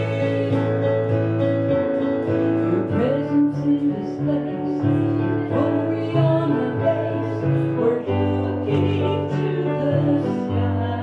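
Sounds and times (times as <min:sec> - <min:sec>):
woman singing: 0:00.0 - 0:01.2, 0:02.6 - 0:11.0
electronic keyboard: 0:00.0 - 0:11.0.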